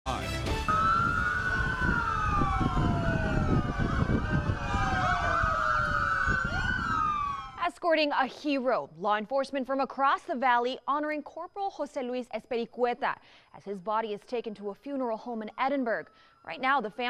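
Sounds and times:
police sirens wailing: 0:00.6 - 0:07.7
steady low rumble: 0:00.7 - 0:07.6.

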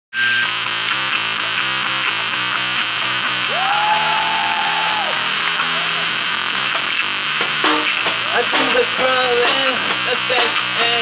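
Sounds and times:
distorted electric guitar: 0:00.1 - 0:11.0
live rock band playing: 0:00.3 - 0:11.0.

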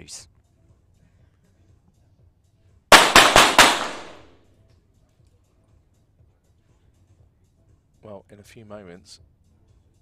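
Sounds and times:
pistol shots with ringing reverb: 0:02.9 - 0:04.4.

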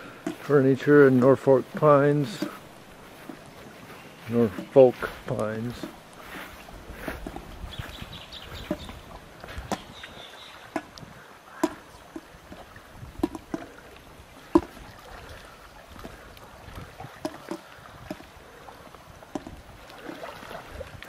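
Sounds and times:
swimmers splashing: 0:00.0 - 0:21.0
wash of moving water: 0:00.0 - 0:21.0.

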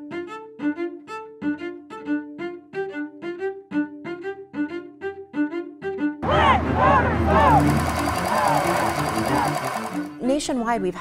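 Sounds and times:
background music low notes: 0:00.0 - 0:11.0
machine clattering: 0:07.3 - 0:10.2.

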